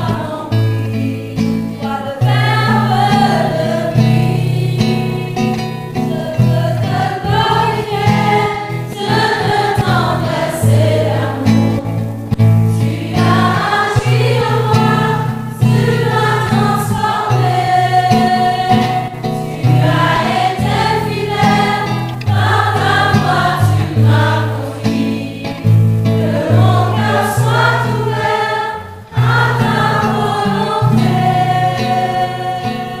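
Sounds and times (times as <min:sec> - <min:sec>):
choir singing a hymn: 0:00.0 - 0:33.0
instrumental accompaniment bass line: 0:02.3 - 0:33.0.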